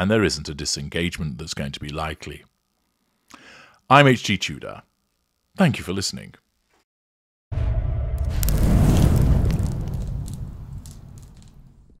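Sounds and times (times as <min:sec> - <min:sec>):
fire crackling: 0:07.6 - 0:12.0
fire rumbling: 0:07.6 - 0:12.0.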